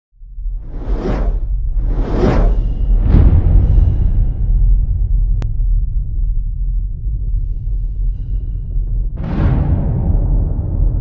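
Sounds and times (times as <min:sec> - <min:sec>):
deep rumble: 0:00.2 - 0:11.0
whoosh sound effect: 0:00.6 - 0:03.1.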